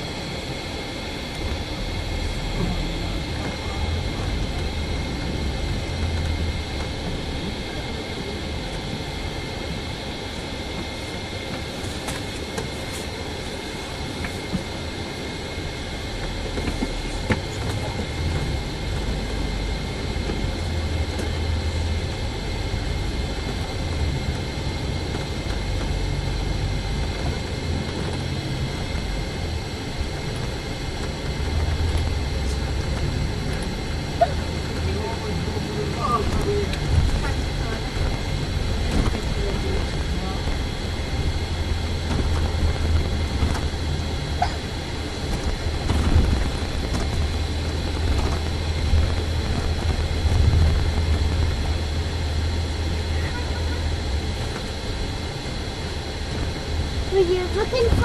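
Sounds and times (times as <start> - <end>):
bus engine rumble: 0.0 - 58.0
faint high whine: 0.0 - 58.0.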